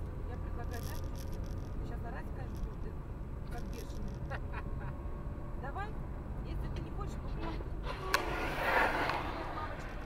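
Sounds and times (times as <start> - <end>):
road and engine rumble in car: 0.0 - 8.2.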